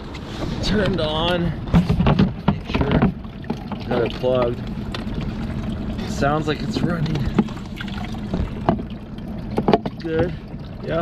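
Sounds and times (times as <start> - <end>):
pump humming: 0.0 - 11.0
water trickling: 0.6 - 11.0
plastic cup knocking on hull: 1.8 - 5.2, 8.3 - 8.9, 9.6 - 10.1.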